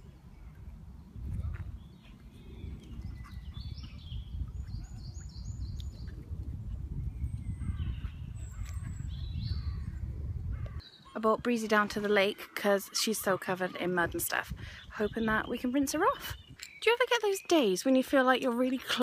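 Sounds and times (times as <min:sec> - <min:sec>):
wind rumble on microphone: 0:00.0 - 0:10.8, 0:14.0 - 0:16.7
small birds chirping: 0:00.0 - 0:19.0.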